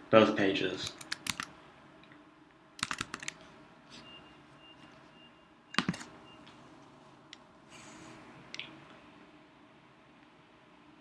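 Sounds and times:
keyboard keys clicking: 0:00.9 - 0:01.5, 0:02.8 - 0:03.4.

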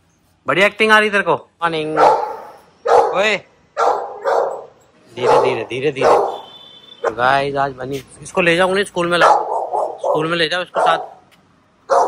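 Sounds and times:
dog barking: 0:01.9 - 0:07.3, 0:09.2 - 0:11.2.

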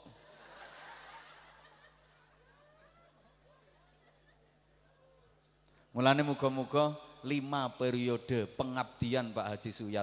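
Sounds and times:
audience laughing: 0:00.2 - 0:05.1.

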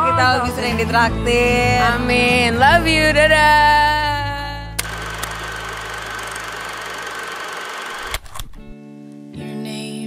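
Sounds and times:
music: 0:00.0 - 0:04.8, 0:08.6 - 0:10.0
film projector whirring and rattling: 0:04.8 - 0:08.6
projector clicks: 0:04.8 - 0:08.7.

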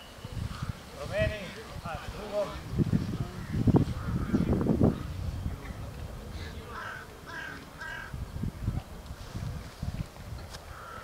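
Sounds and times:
bird cawing: 0:00.5 - 0:00.8, 0:06.4 - 0:08.2, 0:10.7 - 0:11.0.

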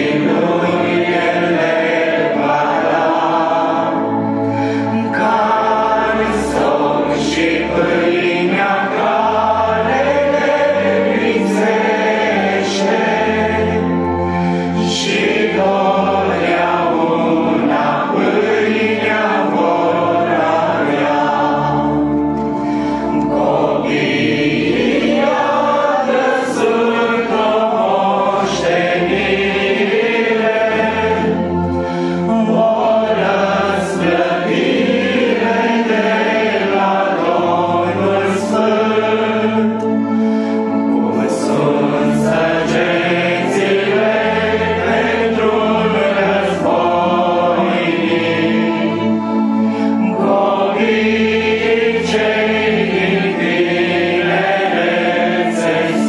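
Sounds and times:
congregation singing a hymn: 0:00.0 - 0:56.0.

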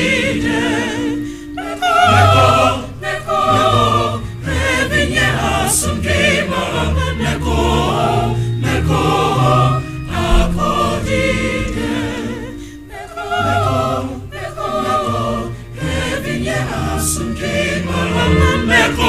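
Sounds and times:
choir singing with vibrato: 0:00.0 - 0:19.0
low sustained bass notes: 0:07.6 - 0:14.4.

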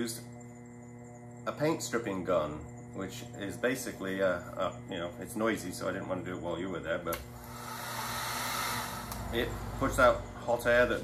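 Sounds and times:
heat gun fan hissing: 0:06.8 - 0:11.0.

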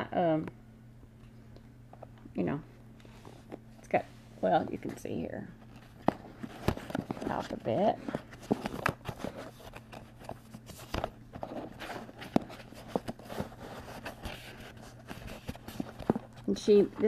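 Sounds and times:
steady low hum: 0:00.0 - 0:17.0
fingers flipping card dividers: 0:05.7 - 0:16.4.

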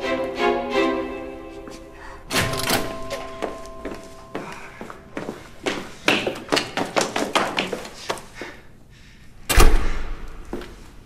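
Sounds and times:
footsteps down hard stairs: 0:01.6 - 0:08.6.

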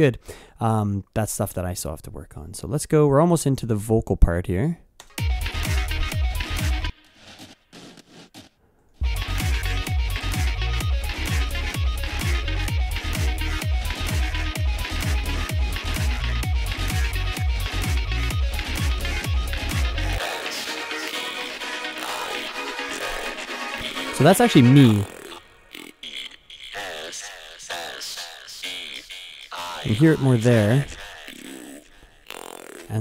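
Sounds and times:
electronic dance music: 0:05.2 - 0:33.0
heavy sub-bass: 0:05.3 - 0:06.9, 0:09.0 - 0:20.2.

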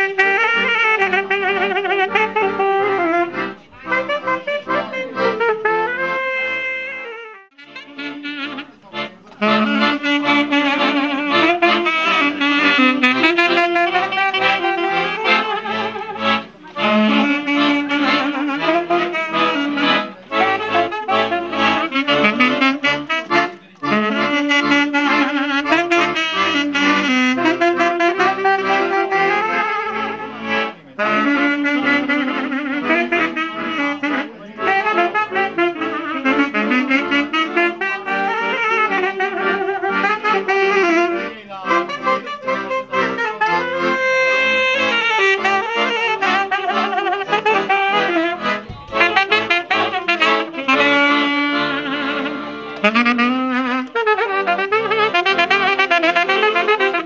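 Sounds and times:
saxophones and accordion folk tune: 0:00.0 - 0:57.0.

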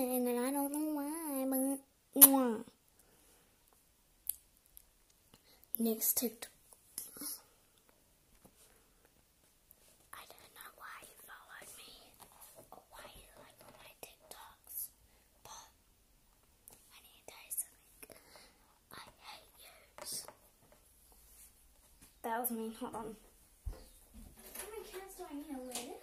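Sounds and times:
girl whispering: 0:07.0 - 0:07.5, 0:10.2 - 0:12.2, 0:12.8 - 0:15.8, 0:16.9 - 0:18.2, 0:18.9 - 0:20.2.

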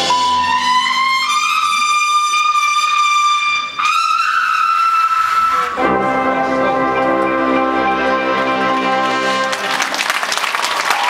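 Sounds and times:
trumpets holding high notes: 0:00.0 - 0:10.0
low brass sustained chord: 0:05.8 - 0:09.6.

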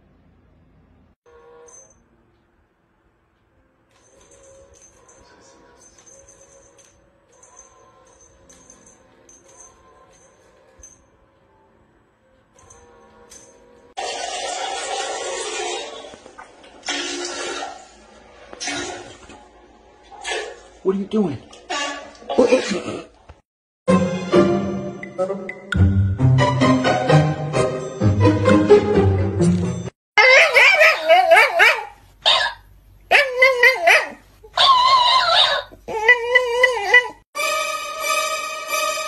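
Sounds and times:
water splashing in toilet bowl: 0:14.0 - 0:18.0
dog yowling and whining: 0:30.2 - 0:37.2.

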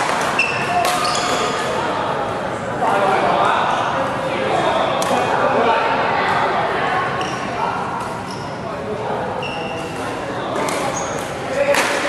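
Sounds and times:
echoing background chatter: 0:00.0 - 0:12.0
shoes squeaking on court floor: 0:00.2 - 0:01.7, 0:07.1 - 0:08.6, 0:09.3 - 0:11.5.

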